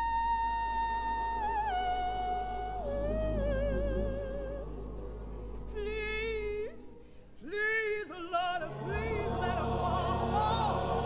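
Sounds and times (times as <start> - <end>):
woman singing gospel: 5.7 - 11.0.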